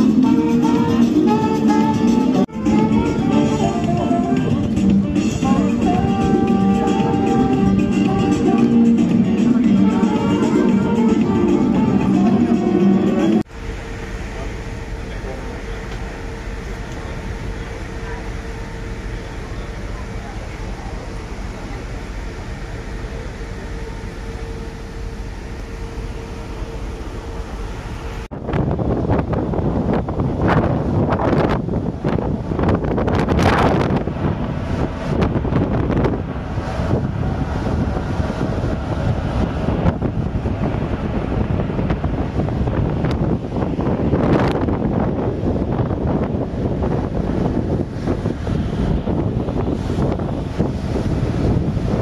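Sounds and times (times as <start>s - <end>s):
water and ship under way: 0.0s - 52.0s
wind buffeting microphone: 28.2s - 52.0s.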